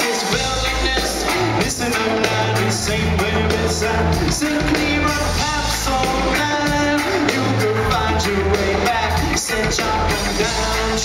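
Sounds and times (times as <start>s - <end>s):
live reggae band: 0.0s - 11.0s
man singing: 0.0s - 11.0s.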